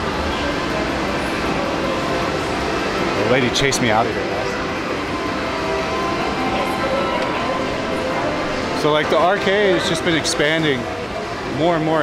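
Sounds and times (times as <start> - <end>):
indoor mall din: 0.0 - 12.0.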